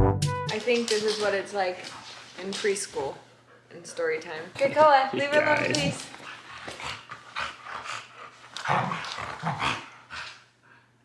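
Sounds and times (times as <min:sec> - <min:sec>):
dogs play-fighting growls: 0:05.2 - 0:10.4.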